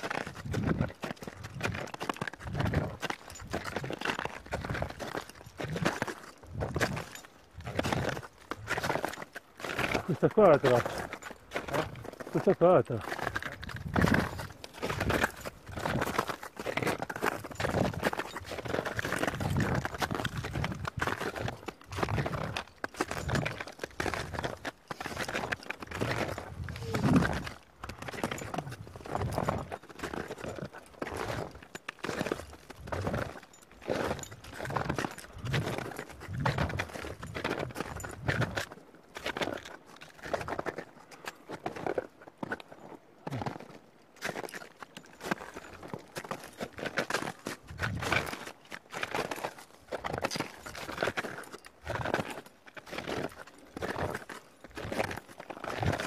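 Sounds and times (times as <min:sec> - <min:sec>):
boots crunching in snow: 0:00.0 - 0:40.8
trekking poles planting: 0:07.6 - 0:38.5.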